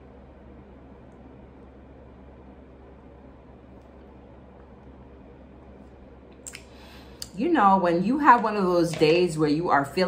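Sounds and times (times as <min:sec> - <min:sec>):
steady low hum: 0:00.0 - 0:10.0
lip smack: 0:06.3 - 0:07.3.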